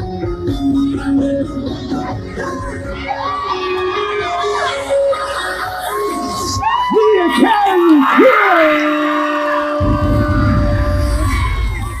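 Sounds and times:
crowd cheering and yelling: 0:02.0 - 0:12.0.

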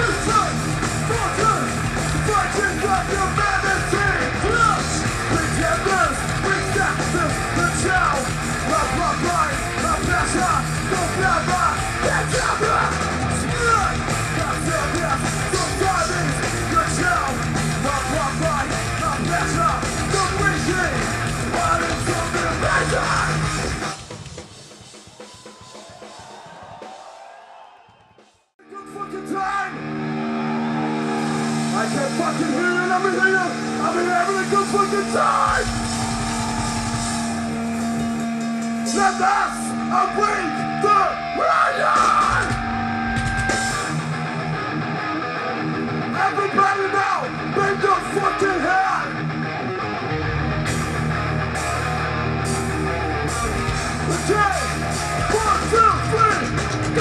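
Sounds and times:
live thrash metal band: 0:00.0 - 0:26.2, 0:28.8 - 0:57.0
drums: 0:00.0 - 0:57.0
person yelling: 0:39.0 - 0:42.6.

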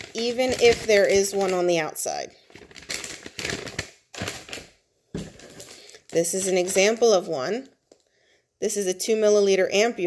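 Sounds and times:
peel pouches rustling and crinkling: 0:00.0 - 0:08.1.

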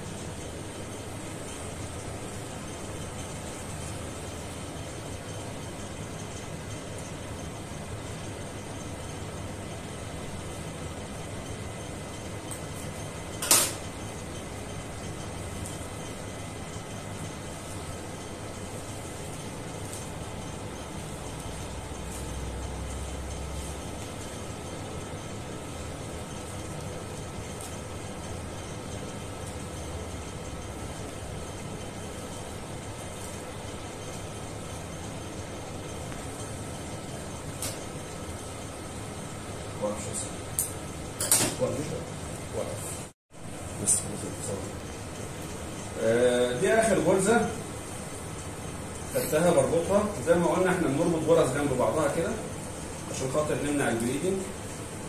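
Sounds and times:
room hum and hiss: 0:00.0 - 0:55.0.

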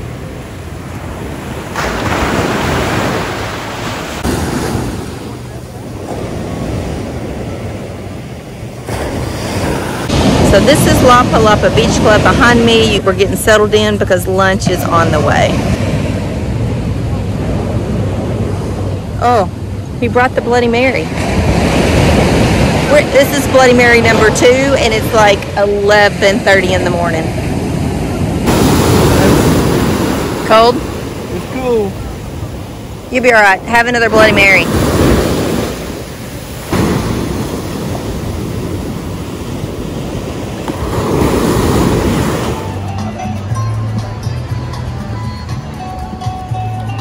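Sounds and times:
ocean surf breaking on beach: 0:00.0 - 0:13.4, 0:20.6 - 0:42.9
wave crashing: 0:00.0 - 0:13.9, 0:20.9 - 0:43.1.

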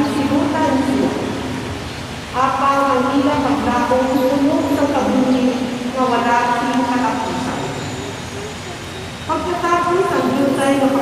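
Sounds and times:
woman reading aloud over microphone: 0:00.0 - 0:01.6, 0:02.3 - 0:08.2, 0:09.2 - 0:11.0.

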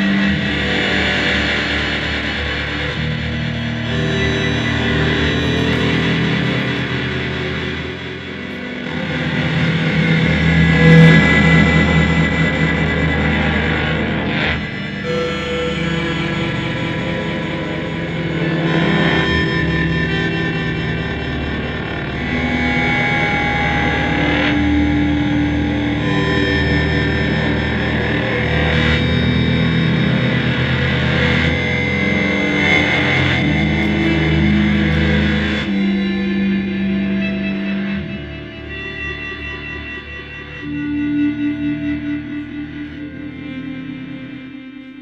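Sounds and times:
distorted electric guitar drone: 0:00.0 - 0:45.0.

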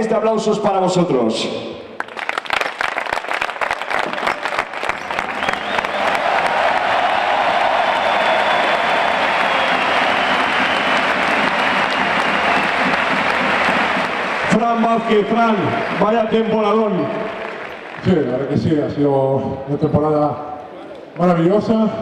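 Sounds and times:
close hand claps: 0:02.0 - 0:18.2
crowd applauding: 0:02.0 - 0:19.0.

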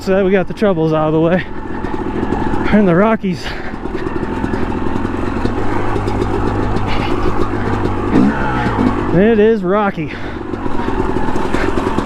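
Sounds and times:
two-stroke motorcycle engine: 0:00.0 - 0:12.0.

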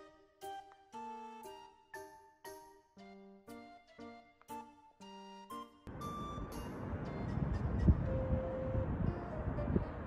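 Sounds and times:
distant traffic rumble: 0:05.9 - 0:10.0.

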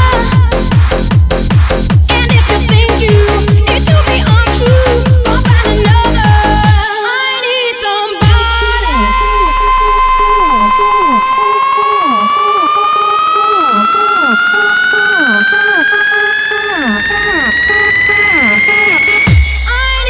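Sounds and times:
bass drum: 0:00.0 - 0:06.8, 0:08.2 - 0:11.4, 0:19.3 - 0:20.0
rising synth lead: 0:08.2 - 0:20.0
short falling synth notes: 0:08.3 - 0:19.7.

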